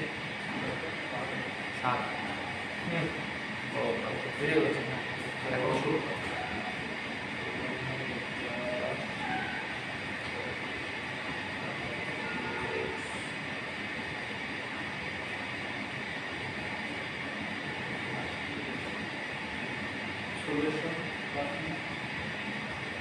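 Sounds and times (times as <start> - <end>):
steady background hiss: 0.0 - 23.0.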